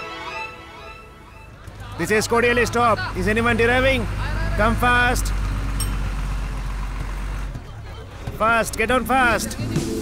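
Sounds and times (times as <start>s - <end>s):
street noise: 0.0s - 10.0s
bus diesel engine rumbling: 0.1s - 10.0s.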